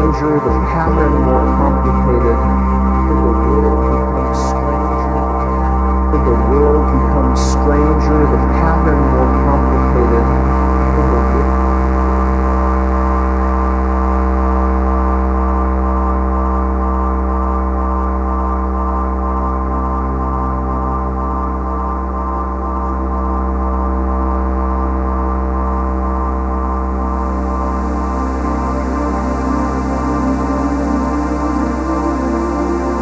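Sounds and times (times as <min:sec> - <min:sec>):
deep bass drone: 0:00.0 - 0:33.0
sustained synthesizer chord: 0:00.0 - 0:33.0.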